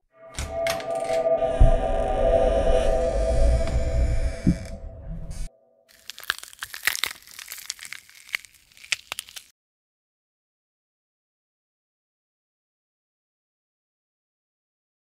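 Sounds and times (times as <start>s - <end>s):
dense drone with deep rumble: 0.4s - 5.5s
irregular crackles and clicks: 5.9s - 9.5s.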